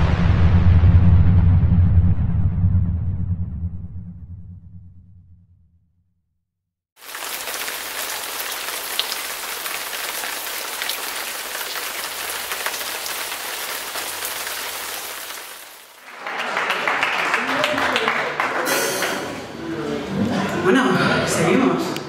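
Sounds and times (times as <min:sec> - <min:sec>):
rain-like hiss with crackles: 0:07.0 - 0:16.0.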